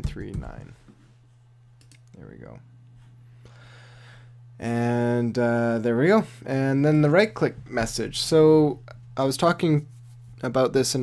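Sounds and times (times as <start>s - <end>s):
low electrical hum: 0.0s - 11.0s
computer key clicks: 1.8s - 2.2s.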